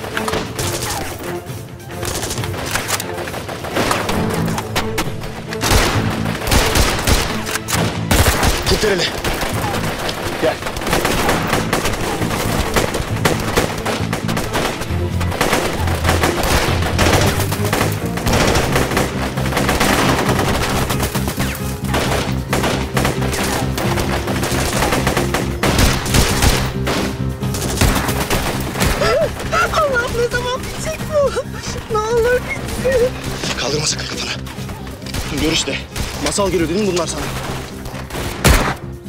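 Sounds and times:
automatic rifle fire: 5.6 - 21.0.

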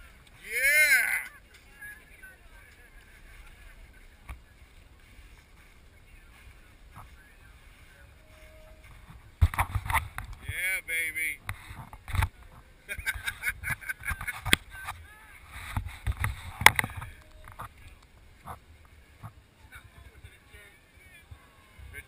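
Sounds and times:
thumps against camera microphone: 8.9 - 10.6, 15.6 - 17.7.

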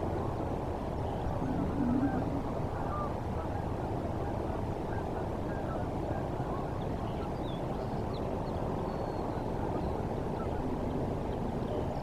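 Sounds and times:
low outdoor rumble: 0.0 - 4.8
waterfowl calls: 1.2 - 3.7.

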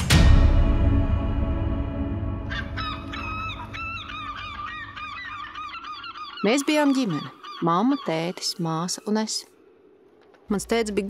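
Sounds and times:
low music tail: 0.0 - 5.0
birds calling squeaky: 2.5 - 9.4.

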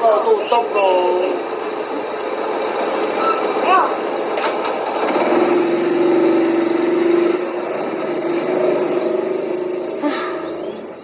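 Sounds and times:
small motorcycle engine revving: 0.9 - 11.0.

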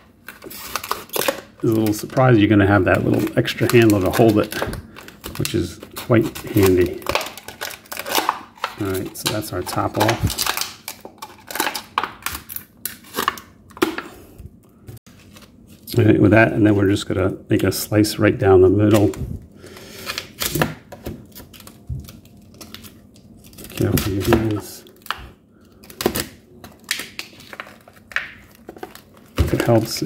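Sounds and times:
plastic bottle crinkling: 0.2 - 12.4.

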